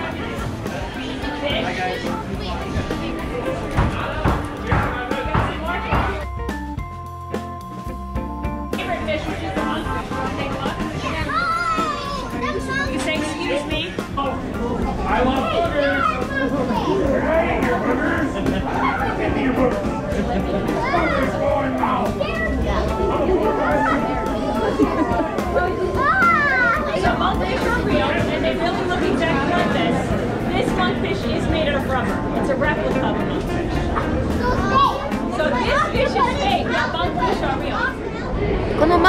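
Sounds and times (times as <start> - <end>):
crowd chatter: 0.0 - 39.0
children's voices: 9.6 - 32.0, 33.3 - 39.0.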